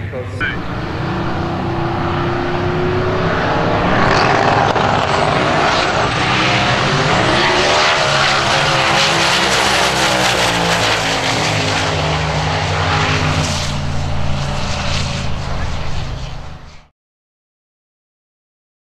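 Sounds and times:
drag car engine accelerating: 0:00.0 - 0:16.9.

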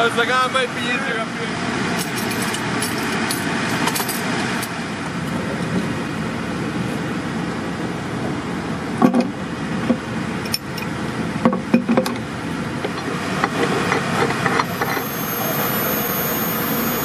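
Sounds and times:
engine running: 0:00.0 - 0:17.0.

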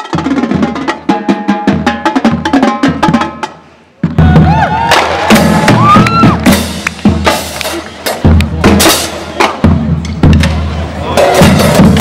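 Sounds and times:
marching drumline playing: 0:00.0 - 0:12.0
cheering and whooping voices: 0:04.2 - 0:06.5.

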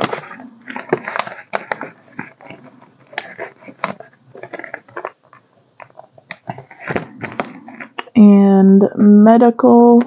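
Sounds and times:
banknotes and plastic rustling: 0:00.0 - 0:08.2.

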